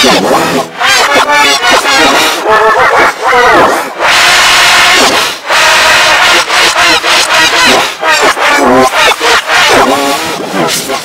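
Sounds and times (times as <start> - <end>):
distorted reversed yelling: 0.0 - 11.0.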